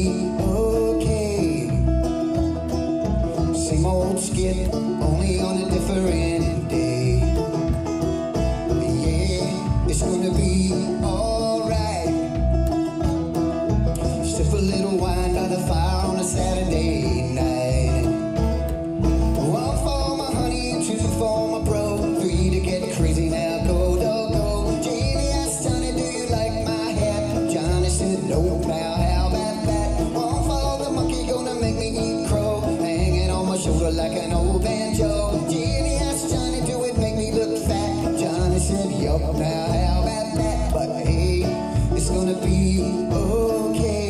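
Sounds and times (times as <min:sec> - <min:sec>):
banjo picking: 0:00.0 - 0:44.0
plucked double bass: 0:00.0 - 0:44.0.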